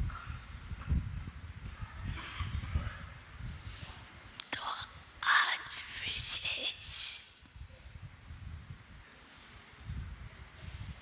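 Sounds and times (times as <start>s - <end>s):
woman speaking breathily: 4.5s - 7.4s.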